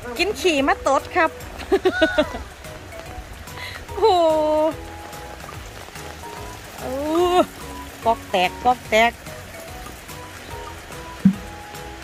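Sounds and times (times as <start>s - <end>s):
urine splashing onto dirt: 3.9s - 11.8s.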